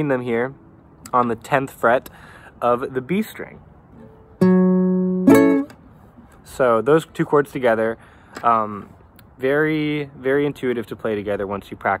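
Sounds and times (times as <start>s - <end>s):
acoustic guitar chord strummed: 4.0s - 5.8s
guitar bass note plucked: 4.4s - 5.8s.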